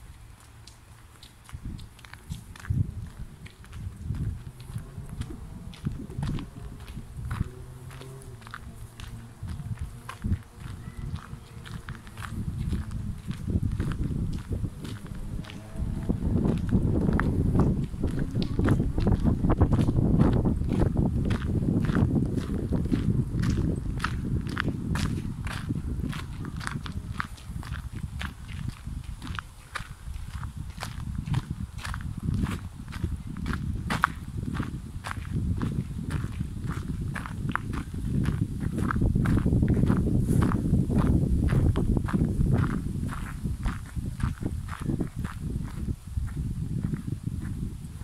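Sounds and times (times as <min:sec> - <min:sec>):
footsteps on gravel: 0:00.0 - 0:48.0
low rumble: 0:02.4 - 0:48.0.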